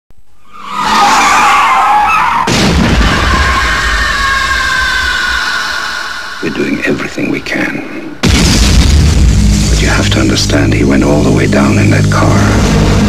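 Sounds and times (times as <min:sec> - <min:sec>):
tyres screeching: 0:00.4 - 0:06.9
heavy car crash: 0:02.4 - 0:04.2
low rumble: 0:08.2 - 0:13.0.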